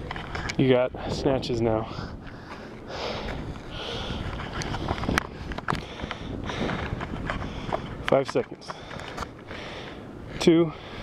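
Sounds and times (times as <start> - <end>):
man breathing hard: 1.8 - 8.0, 8.6 - 11.0.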